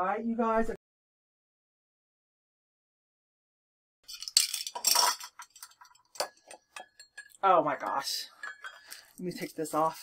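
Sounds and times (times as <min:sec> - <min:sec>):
glass clinking: 0:04.1 - 0:09.2
rustling of objects: 0:04.1 - 0:10.0.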